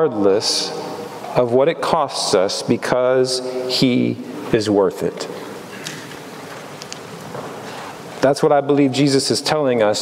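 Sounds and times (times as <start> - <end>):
steady room hiss: 0.0 - 10.0.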